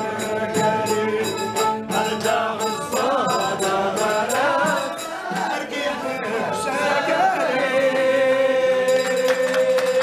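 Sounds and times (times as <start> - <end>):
bowed string instrument: 0.0 - 7.1
percussion beat: 0.0 - 10.0
voices singing chant-like melody: 0.0 - 10.0.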